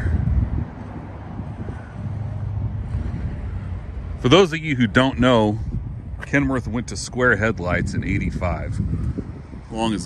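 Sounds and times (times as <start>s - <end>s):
vehicle engine hum: 0.0s - 10.0s
wind buffeting microphone: 0.0s - 10.0s.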